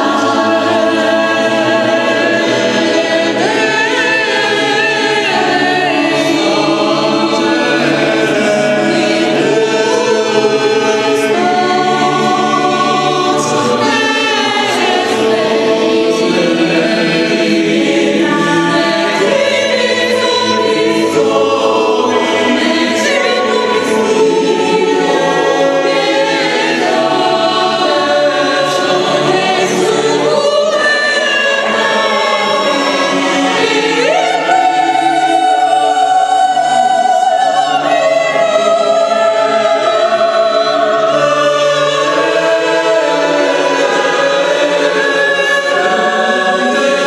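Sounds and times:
mixed choir singing in harmony: 0.0s - 47.0s.

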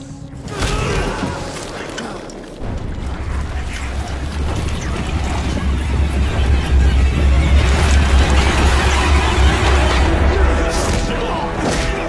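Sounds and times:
dramatic orchestral score: 0.0s - 12.0s
action sound effects: 2.3s - 12.0s.

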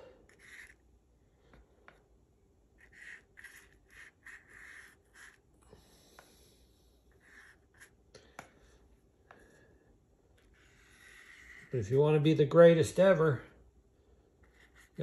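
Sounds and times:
paintbrush brushing on cardboard: 0.3s - 0.8s, 2.8s - 5.5s, 7.1s - 8.0s, 10.4s - 12.0s, 14.4s - 15.0s.

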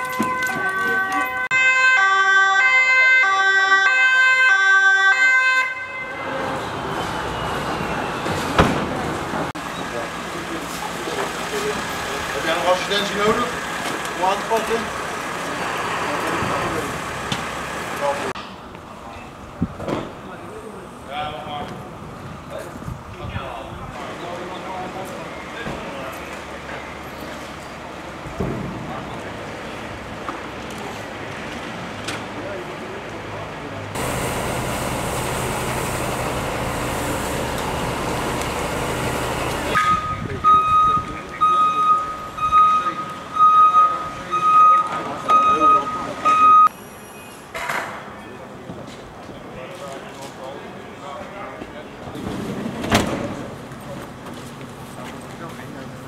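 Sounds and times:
street noise: 0.0s - 56.0s
voices: 6.0s - 47.4s, 48.0s - 56.0s.

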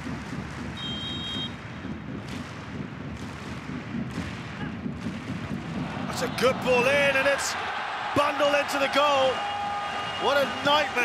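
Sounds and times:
stadium crowd rumble: 0.3s - 11.0s
referee's whistle blast: 0.8s - 1.5s.

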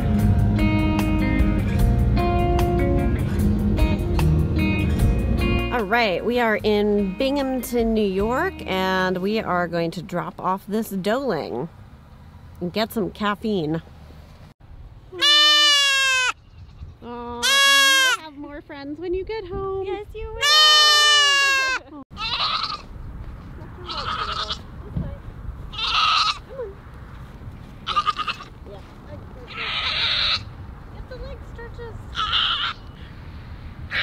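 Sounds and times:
goat bleating: 15.1s - 18.2s, 20.4s - 22.9s, 23.8s - 24.7s, 25.7s - 26.6s, 27.8s - 28.6s, 29.5s - 30.6s, 32.1s - 32.9s.

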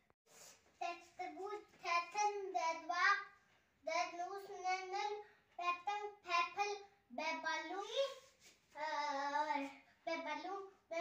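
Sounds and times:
boy chanting sing-song: 0.8s - 3.2s, 3.8s - 11.0s.

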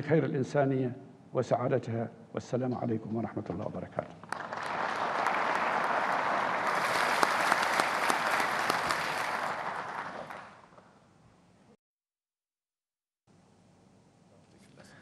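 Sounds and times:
audience applauding: 4.3s - 10.8s.

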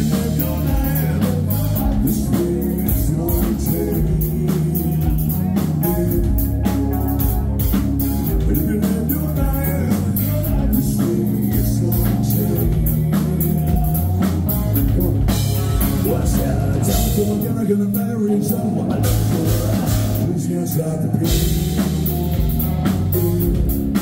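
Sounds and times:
bass guitar: 0.0s - 24.0s
drum kit: 0.0s - 24.0s
electric guitars: 0.0s - 24.0s
person singing lead vocal: 0.0s - 24.0s.

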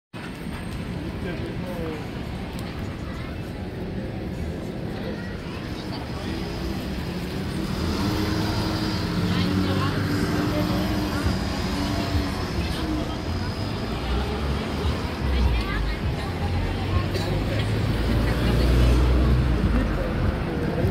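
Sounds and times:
city traffic rumble: 0.1s - 20.9s.

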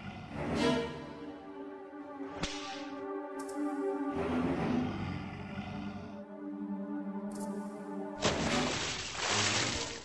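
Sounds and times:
sustained music chord: 6.0s - 8.3s.

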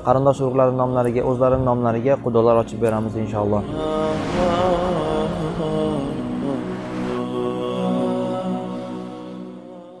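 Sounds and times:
chanted voice holding long notes: 0.0s - 10.0s.

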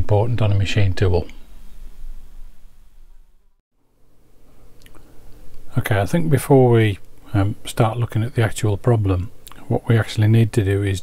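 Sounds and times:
electrical buzzing hum: 0.0s - 11.0s.

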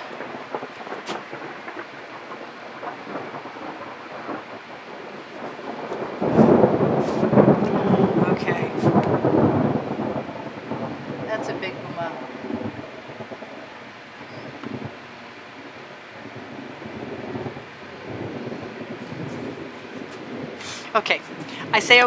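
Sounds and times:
thunder rumbling: 0.0s - 22.0s.

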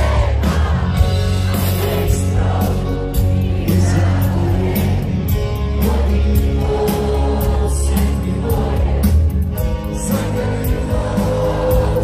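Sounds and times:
crowd singing along: 0.0s - 12.0s
live rock band playing: 0.0s - 12.0s.

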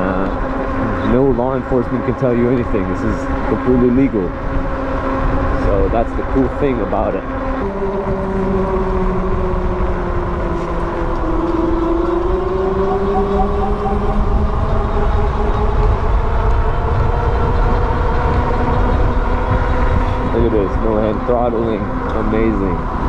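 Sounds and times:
wind rumble on microphone: 0.0s - 23.0s
electric motor whining: 6.7s - 23.0s.

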